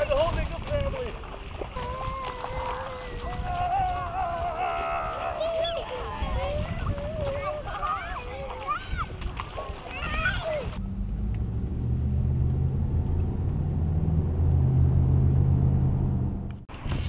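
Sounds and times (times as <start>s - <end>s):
splashing through a puddle: 0.0s - 11.7s, 16.6s - 17.0s
children calling out: 1.8s - 10.8s
car engine hum inside cabin: 10.8s - 16.7s.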